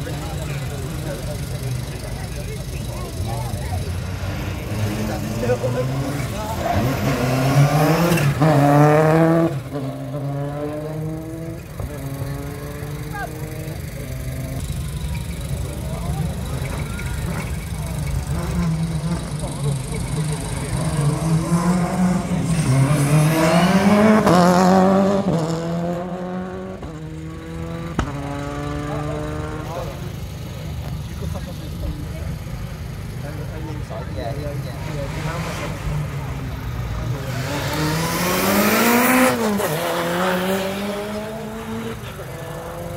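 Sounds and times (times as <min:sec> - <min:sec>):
rally car engine revving: 0:00.0 - 0:42.9.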